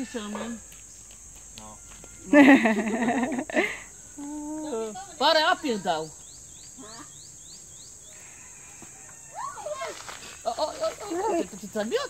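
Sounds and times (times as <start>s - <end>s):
high-pitched insect drone: 0.0s - 12.0s.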